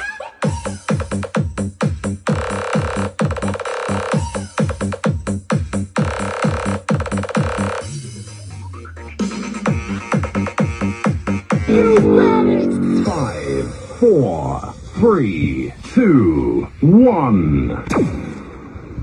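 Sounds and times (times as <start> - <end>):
electronic dance music: 11.7 - 13.8
rising sweep: 11.7 - 14.0.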